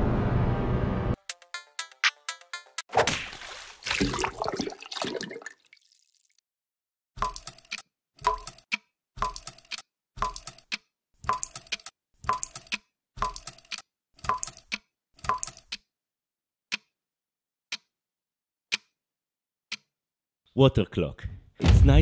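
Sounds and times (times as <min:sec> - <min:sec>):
watery splash: 0:02.9 - 0:06.4
clock ticking: 0:07.2 - 0:15.9, 0:16.7 - 0:17.0, 0:17.7 - 0:18.0, 0:18.7 - 0:19.0, 0:19.7 - 0:19.9.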